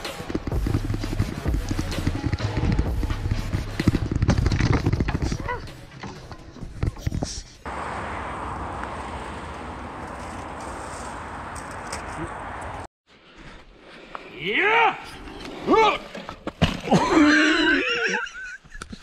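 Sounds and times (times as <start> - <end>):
mountain bike rattling on dirt: 3.8 - 5.5.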